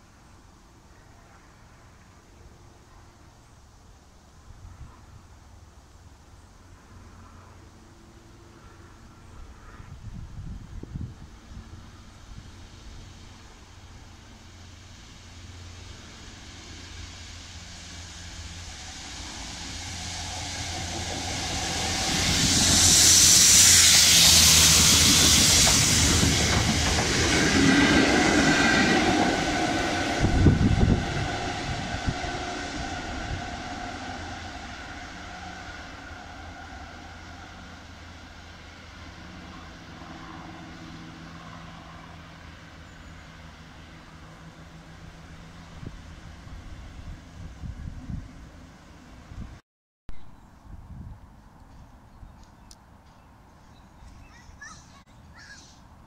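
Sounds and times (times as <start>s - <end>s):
diesel locomotive engine: 0.0s - 56.0s
strong hiss: 10.1s - 39.2s
wheels on rails: 12.8s - 49.4s.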